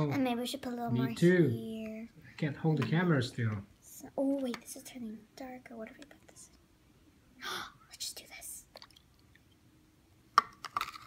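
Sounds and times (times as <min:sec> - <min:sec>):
soft whispering: 0:05.7 - 0:06.6, 0:07.4 - 0:08.8
plastic cups clicking on plate: 0:10.4 - 0:11.0.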